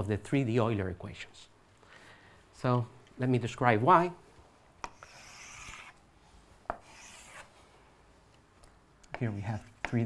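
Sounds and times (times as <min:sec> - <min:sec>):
chalk scraping blackboard: 0:04.8 - 0:06.0, 0:06.7 - 0:07.6, 0:09.1 - 0:10.0
chalk tapping blackboard: 0:04.8 - 0:06.0, 0:06.7 - 0:07.5, 0:09.1 - 0:10.0.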